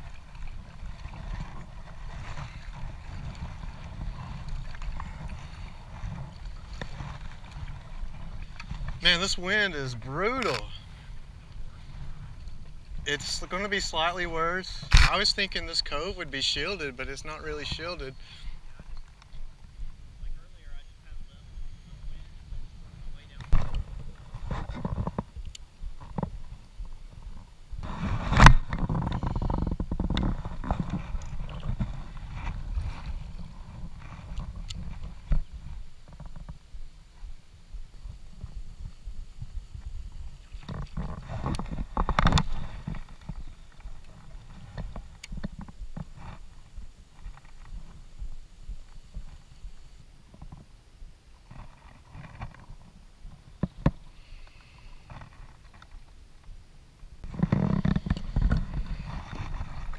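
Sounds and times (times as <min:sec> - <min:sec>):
wind buffeting microphone: 0:00.0 - 0:54.2, 0:56.6 - 0:59.9.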